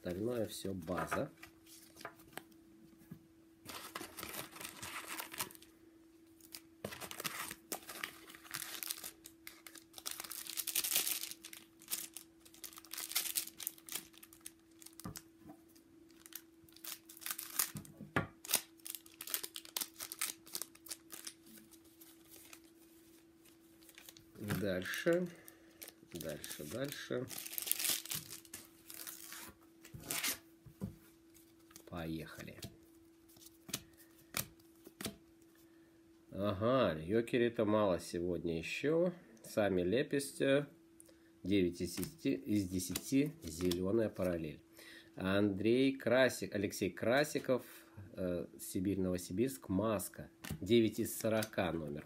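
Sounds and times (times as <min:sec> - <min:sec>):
faint steady hum: 0:00.0 - 0:52.0
foil wrappers crinkling and tearing: 0:03.7 - 0:05.7, 0:06.4 - 0:15.3, 0:16.1 - 0:22.8, 0:23.8 - 0:30.4, 0:42.8 - 0:43.8.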